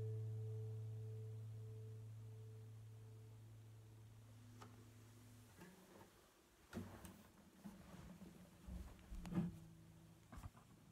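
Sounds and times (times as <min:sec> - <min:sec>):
acoustic guitar chord ringing: 0:00.0 - 0:05.8.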